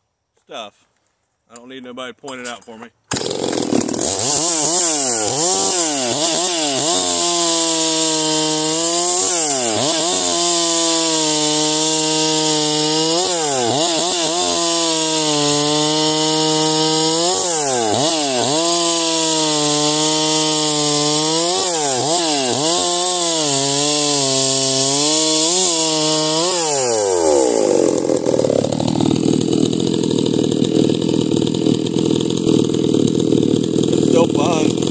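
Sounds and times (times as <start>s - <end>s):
chainsaw cutting log: 2.3s - 34.9s.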